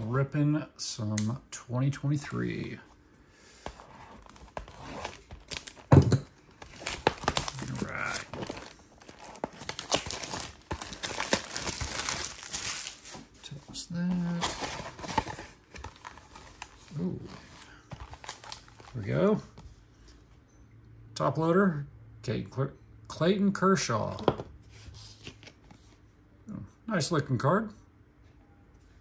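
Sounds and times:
cardboard rustling: 0:03.7 - 0:19.1
knife cutting plastic wrap: 0:03.9 - 0:13.1
plastic crinkles: 0:04.1 - 0:13.3, 0:14.2 - 0:19.1.

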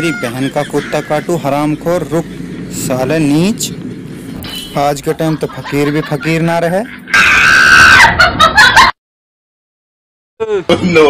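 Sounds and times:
person screaming: 0:07.1 - 0:08.2.

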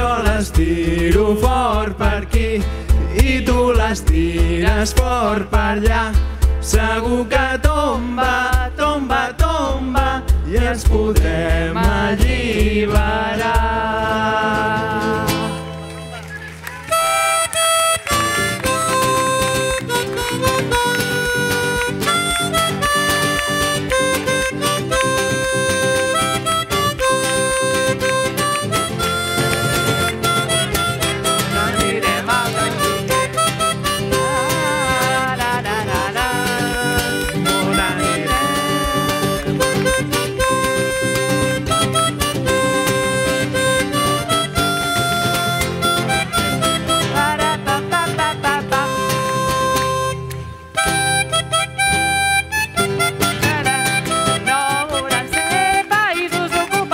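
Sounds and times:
strummed acoustic guitar: 0:00.0 - 0:16.2, 0:16.9 - 0:56.9
harmonica melody: 0:14.2 - 0:56.9.

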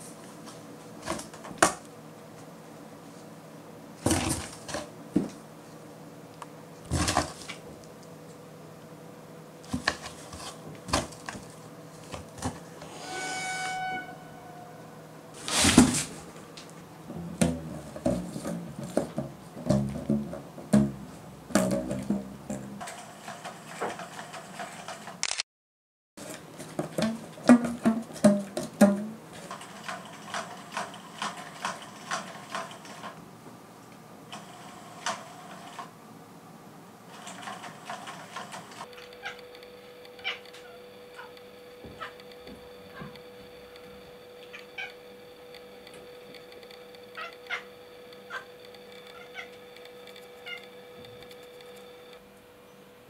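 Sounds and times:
faint steady hum: 0:00.0 - 0:23.0
cats meowing: 0:40.2 - 0:41.3, 0:49.1 - 0:49.6.

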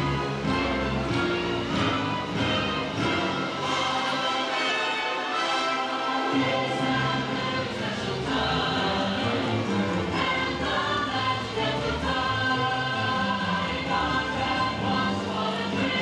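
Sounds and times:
choir singing held notes: 0:00.0 - 0:16.0
christmas music: 0:00.0 - 0:16.0.

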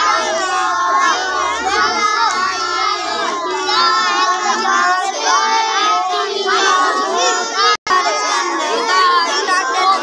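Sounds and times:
children reciting in unison: 0:00.0 - 0:10.0.

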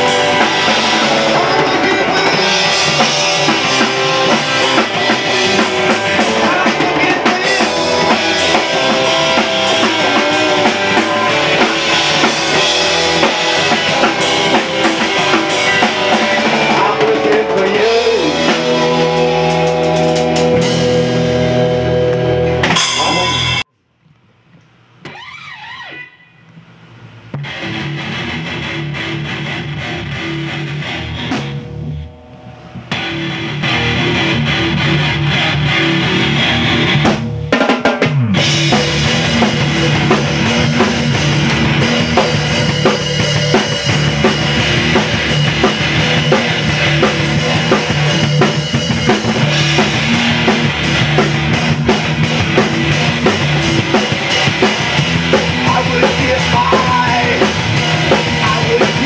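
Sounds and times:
sliding guitar notes: 0:00.0 - 0:23.6, 0:27.4 - 0:37.0
rock band playing: 0:00.0 - 0:23.7, 0:27.4 - 0:59.0.

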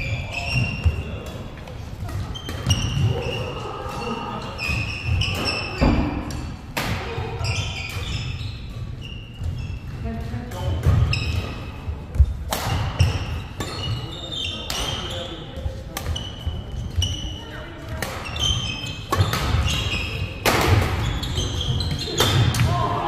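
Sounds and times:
rackets hitting shuttlecock: 0:00.6 - 0:03.4, 0:05.1 - 0:08.1, 0:10.4 - 0:15.1, 0:15.8 - 0:17.3, 0:17.9 - 0:22.9
shoes squeaking on wooden floor: 0:07.4 - 0:10.0, 0:13.0 - 0:20.3, 0:20.9 - 0:22.4.

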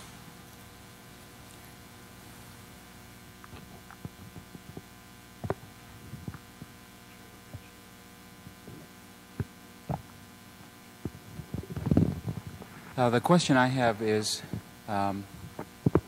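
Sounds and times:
electrical mains hum: 0:00.0 - 0:16.0
microphone handling thumps: 0:11.0 - 0:13.0.

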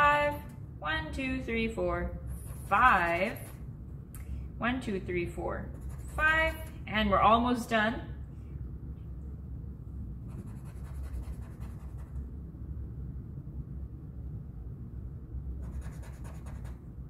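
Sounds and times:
marker scratching on paper: 0:02.3 - 0:03.7, 0:05.7 - 0:06.8, 0:10.3 - 0:12.2, 0:15.6 - 0:16.8.

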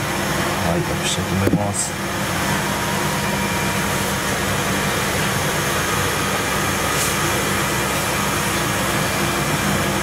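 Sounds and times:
mechanical hum and hiss: 0:00.0 - 0:10.0.

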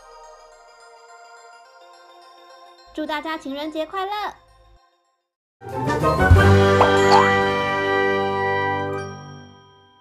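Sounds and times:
bright chime tones ringing: 0:06.8 - 0:07.4.

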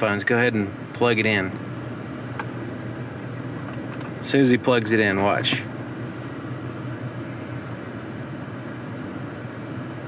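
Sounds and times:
car engine hum: 0:00.0 - 0:10.0
ventilation hiss: 0:00.0 - 0:10.0.

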